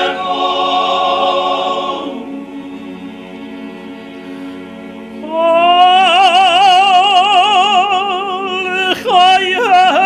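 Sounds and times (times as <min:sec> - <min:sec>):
male choir holding a chord: 0:00.0 - 0:07.0
tenor voice singing chant: 0:05.2 - 0:10.0.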